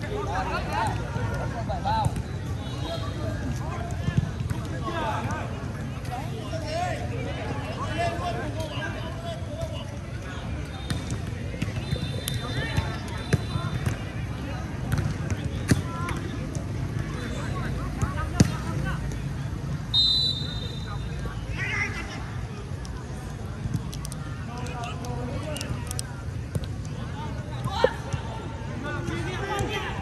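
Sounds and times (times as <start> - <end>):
people calling and talking: 0.0 - 30.0.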